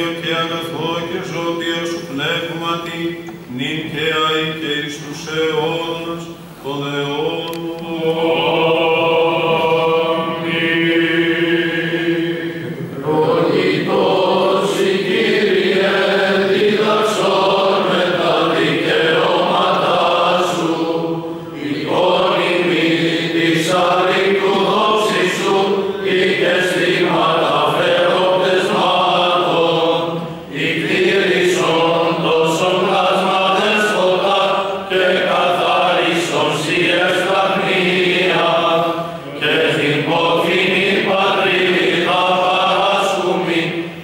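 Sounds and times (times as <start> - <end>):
clergy chanting hymns: 0.0 - 44.0.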